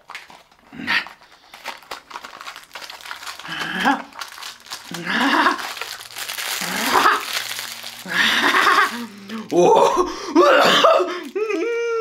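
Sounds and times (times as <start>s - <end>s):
plastic wrapper crinkling: 0.0s - 10.2s.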